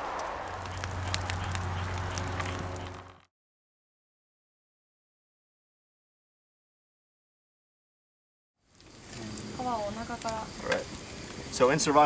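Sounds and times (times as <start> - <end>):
campfire crackling: 0.0 - 3.3, 8.6 - 12.0.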